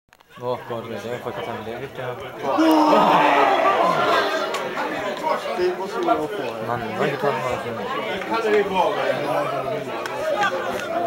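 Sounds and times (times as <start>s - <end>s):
spectators chattering: 0.2s - 11.0s.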